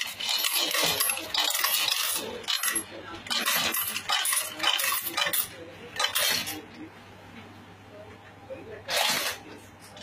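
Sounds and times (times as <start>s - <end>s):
coin counting machine hum: 0.0s - 6.9s, 8.8s - 10.0s.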